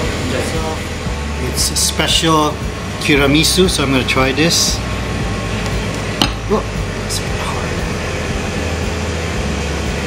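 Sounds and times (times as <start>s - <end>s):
air conditioning hum: 0.0s - 10.0s.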